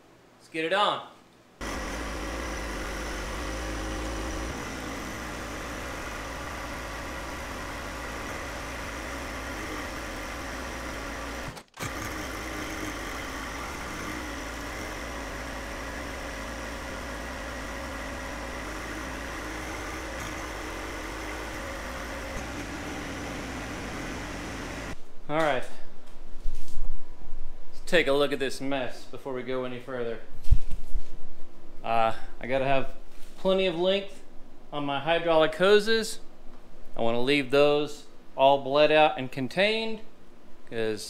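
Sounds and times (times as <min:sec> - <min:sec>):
tractor diesel engine running: 0:01.6 - 0:25.0.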